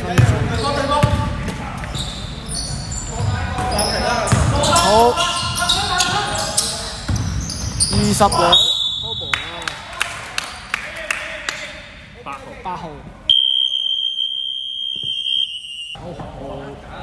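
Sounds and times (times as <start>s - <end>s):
players' voices: 0.0s - 14.6s.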